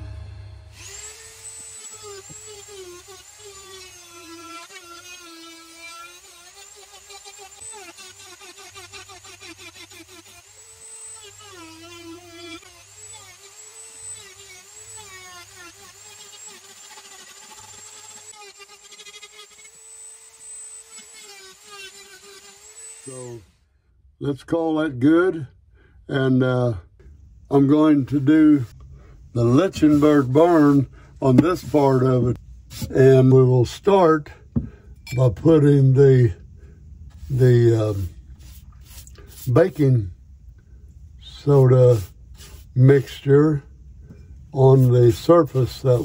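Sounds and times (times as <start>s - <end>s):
rotary tool carving wood: 0.7s - 23.6s, 27.5s - 35.8s, 37.0s - 40.6s, 41.2s - 46.0s.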